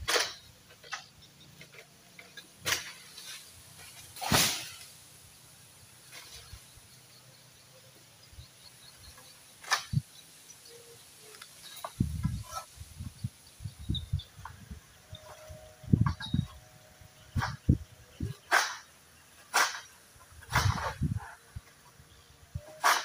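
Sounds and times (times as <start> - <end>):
pole sickle cutting palm fronds: 0.0 - 5.2, 6.0 - 6.7, 9.1 - 10.2, 17.4 - 23.0
sharp cracks: 2.6 - 3.4, 4.1 - 5.0, 18.5 - 21.0.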